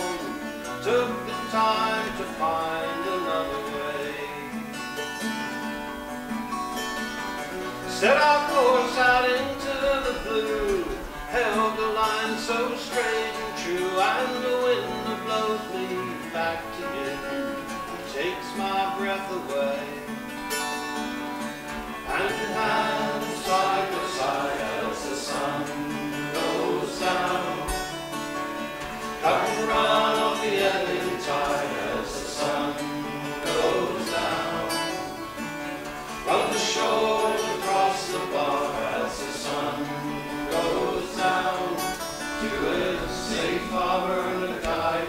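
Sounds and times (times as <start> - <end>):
men singing: 0.0 - 4.6, 7.8 - 20.1, 22.0 - 45.0
acoustic guitars strumming: 0.0 - 45.0.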